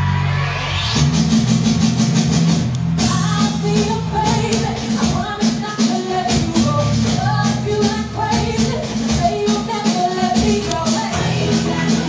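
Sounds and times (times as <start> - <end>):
sustained bass notes: 0.0 - 4.6, 11.1 - 12.0.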